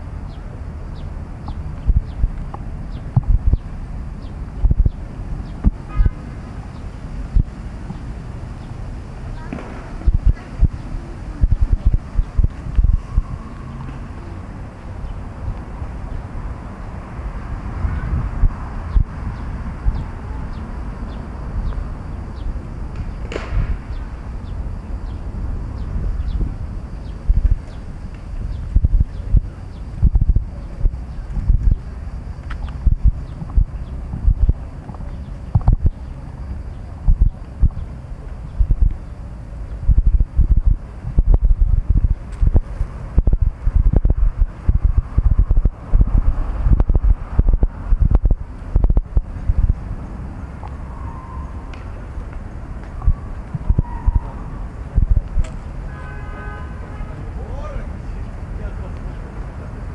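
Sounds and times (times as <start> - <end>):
wind rumbling on microphone: 0.0 - 59.9
sharp thumps: 1.5 - 3.6, 32.5 - 36.0, 38.6 - 39.0
faint voices: 9.0 - 12.0.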